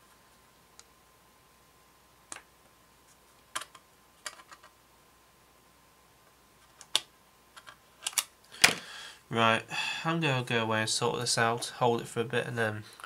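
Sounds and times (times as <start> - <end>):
plastic parts clicking: 3.5 - 4.7, 6.7 - 8.8.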